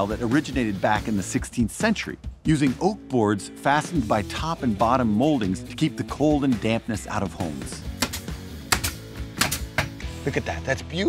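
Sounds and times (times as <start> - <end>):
background music: 0.0 - 11.0
nail gun firing: 8.0 - 10.0.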